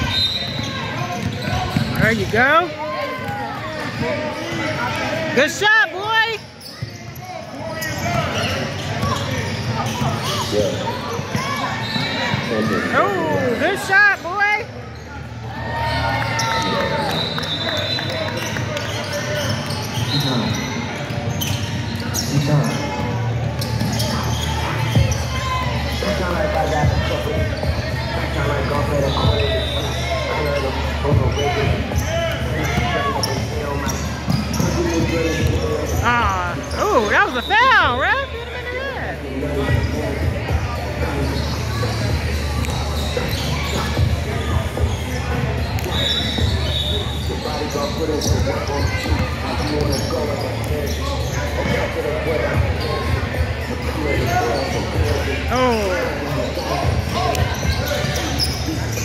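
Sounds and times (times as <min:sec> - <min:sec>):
sneakers squeaking: 0:00.0 - 0:59.0.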